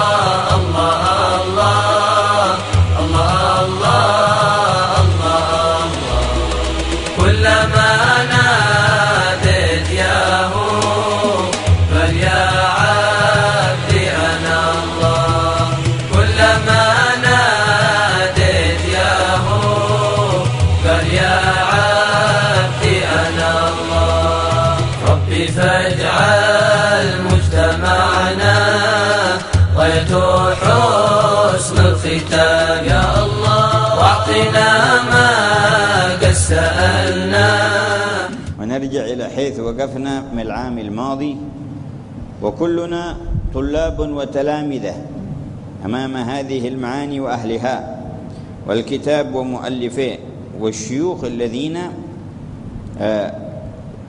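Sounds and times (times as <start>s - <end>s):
low musical accompaniment: 0.0s - 39.3s
devotional vocal chant: 0.0s - 51.8s.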